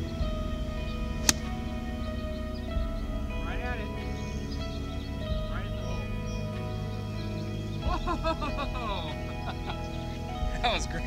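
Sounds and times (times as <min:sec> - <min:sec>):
background music: 0:00.0 - 0:11.0
golf club striking ball: 0:01.2 - 0:01.7.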